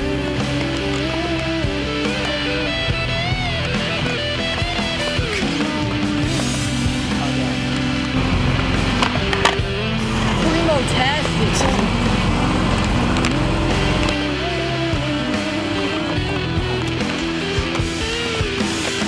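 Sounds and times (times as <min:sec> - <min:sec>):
rock music: 0:00.0 - 0:19.0
skateboard wheels rolling on concrete: 0:00.0 - 0:19.0
skateboard clacks: 0:07.3 - 0:10.6.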